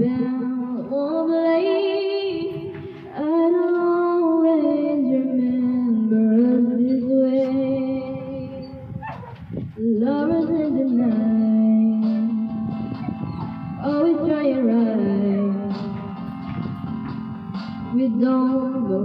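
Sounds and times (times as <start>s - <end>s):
woman singing a slow ballad: 0.0s - 8.8s, 9.8s - 12.7s, 13.8s - 16.1s, 17.8s - 19.0s.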